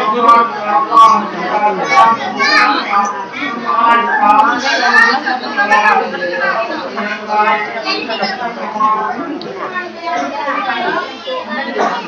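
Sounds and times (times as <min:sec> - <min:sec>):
children's voices: 0:00.0 - 0:12.0
people talking: 0:00.0 - 0:12.0.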